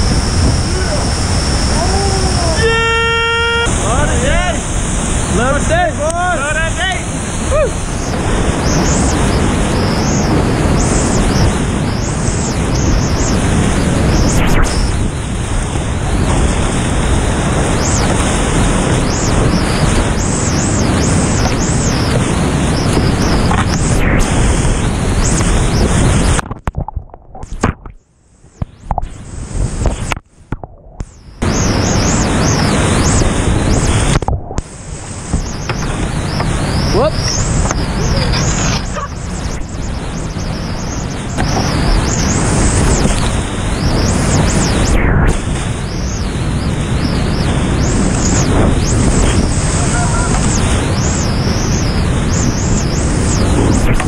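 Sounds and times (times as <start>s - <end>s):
whitewater rushing: 0.0s - 26.5s, 31.4s - 54.0s
water pounding against camera housing: 26.3s - 28.0s.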